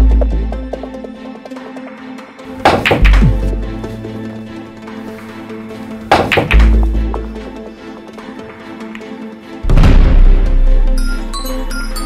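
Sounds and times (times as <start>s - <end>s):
background music: 0.0s - 12.0s
deep boom: 9.7s - 10.6s.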